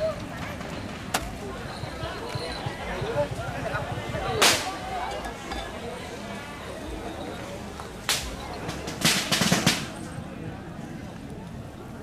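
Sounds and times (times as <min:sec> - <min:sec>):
crowd murmuring: 0:00.0 - 0:12.0.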